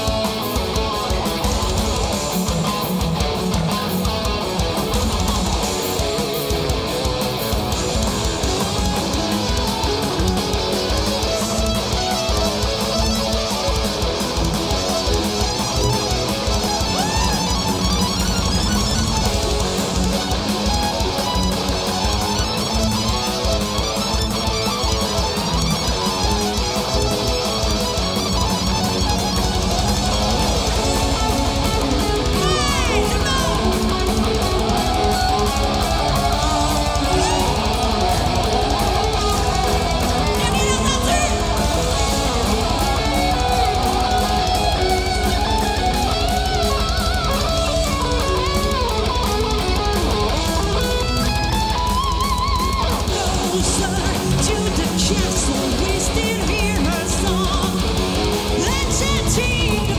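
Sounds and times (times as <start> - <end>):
bass guitar: 0.0 - 59.9
drum kit: 0.0 - 59.9
electric guitars: 0.0 - 59.9
keyboard tracks: 0.0 - 59.9.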